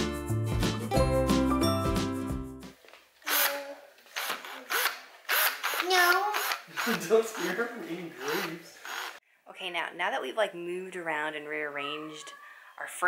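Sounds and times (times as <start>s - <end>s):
background music: 0.0s - 2.8s
handheld power tool bursts: 3.3s - 7.6s, 8.2s - 9.2s.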